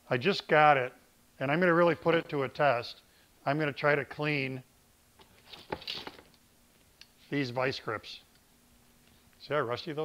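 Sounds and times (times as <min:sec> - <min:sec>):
handling rustles and knocks: 0:05.2 - 0:07.3.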